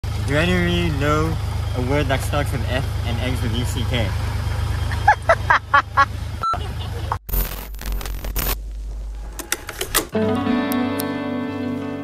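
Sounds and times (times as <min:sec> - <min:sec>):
man laughing: 0:04.8 - 0:07.2.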